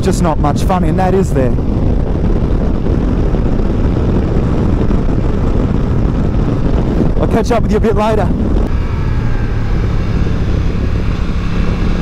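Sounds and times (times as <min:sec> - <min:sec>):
motorcycle engine cruising: 0:00.0 - 0:12.0
wind on helmet microphone: 0:00.0 - 0:12.0.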